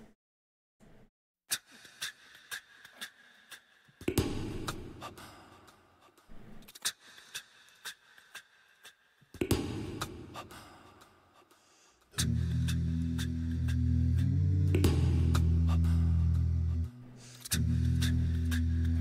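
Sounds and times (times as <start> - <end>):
breathy vocal swells: 10.2 - 19.0.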